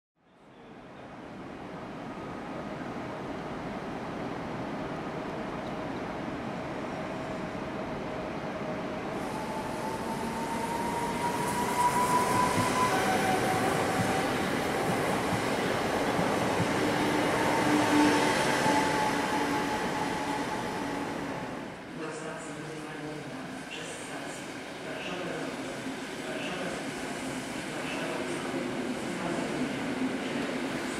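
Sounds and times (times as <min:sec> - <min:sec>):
train traction gear whine: 0:09.2 - 0:15.5
train wheels rumbling on rails: 0:09.3 - 0:21.3.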